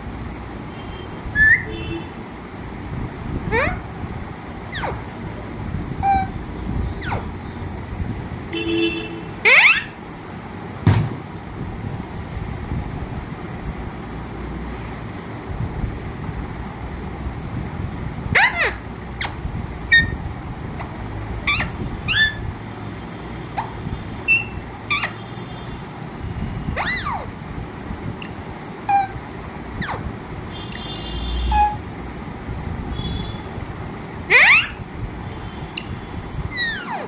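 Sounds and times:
parakeet calls and squawks: 0:01.3 - 0:01.8, 0:03.4 - 0:03.9, 0:04.7 - 0:05.2, 0:06.0 - 0:07.5, 0:09.4 - 0:10.0, 0:18.3 - 0:22.5, 0:23.5 - 0:25.3, 0:26.7 - 0:27.4, 0:28.2 - 0:30.1, 0:31.5 - 0:31.9, 0:34.2 - 0:34.9, 0:35.6 - 0:37.0.

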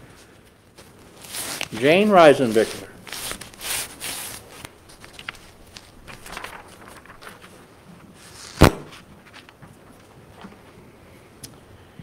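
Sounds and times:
soft footsteps: 0:00.2 - 0:06.3.

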